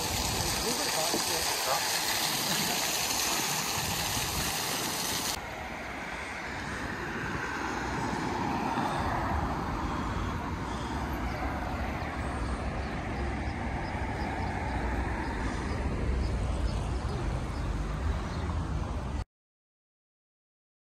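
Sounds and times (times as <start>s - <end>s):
fountain jets splashing: 0.0s - 19.2s
low rumble of traffic: 0.0s - 19.2s.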